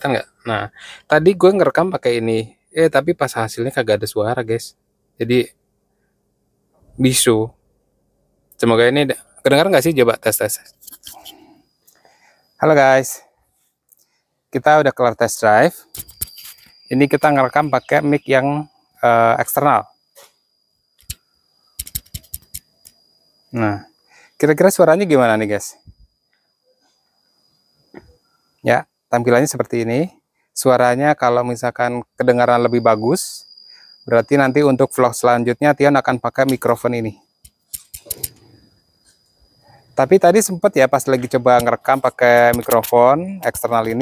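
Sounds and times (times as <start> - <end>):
faint high-pitched whine: 0.0 - 44.0.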